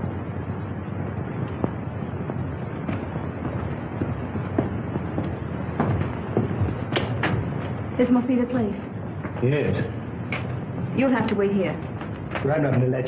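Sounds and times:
steady hiss: 0.0 - 13.0
scattered knocks and clicks: 0.7 - 8.0, 11.8 - 13.0.

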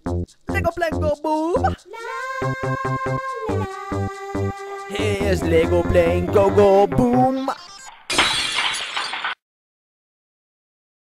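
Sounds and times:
crash with shattering: 7.8 - 9.4.

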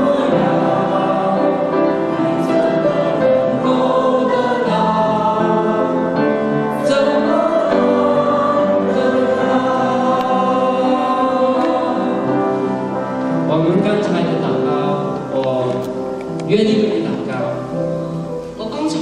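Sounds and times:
mixed choir singing: 0.0 - 13.4.

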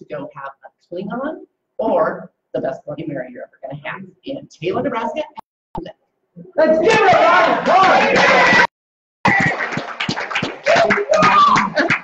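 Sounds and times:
indistinct voices in a room: 0.0 - 8.7.

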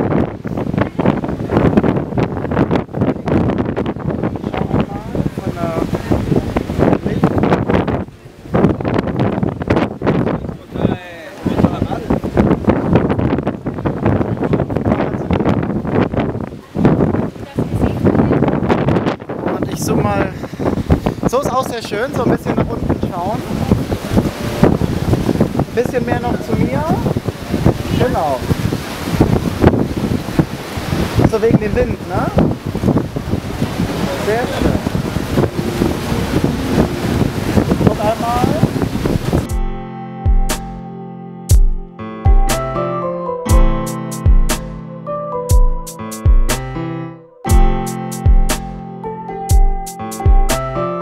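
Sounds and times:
wind blowing on microphone: 0.0 - 40.7
people talking nearby: 4.3 - 7.5, 10.2 - 12.4, 16.5 - 18.6, 34.0 - 35.3
background music with held tones: 39.5 - 51.0.

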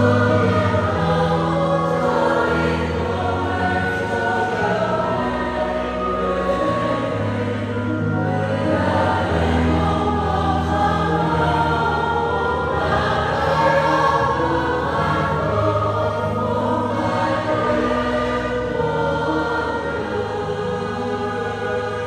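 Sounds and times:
mixed choir singing a hymn: 0.0 - 22.0.

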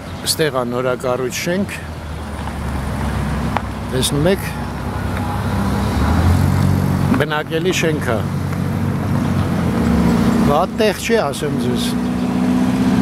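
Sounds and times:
car engine rumbling: 0.0 - 13.0
street traffic: 0.0 - 13.0.

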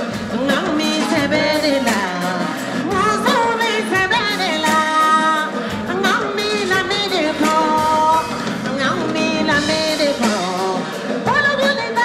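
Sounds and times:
live band with drums: 0.0 - 12.0
woman singing into a microphone: 0.0 - 12.0.

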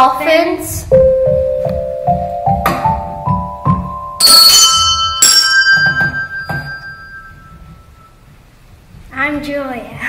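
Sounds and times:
bright bell-like chime strikes: 4.2 - 8.2.

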